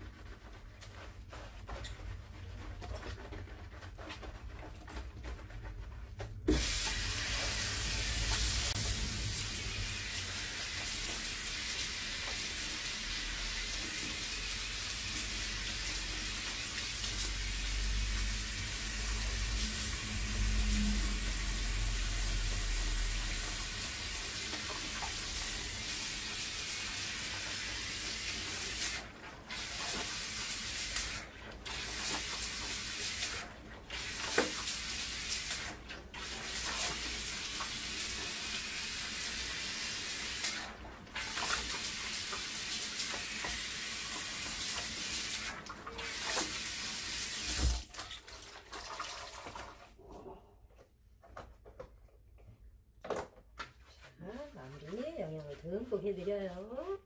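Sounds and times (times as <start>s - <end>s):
water spraying hiss: 6.5s - 13.7s.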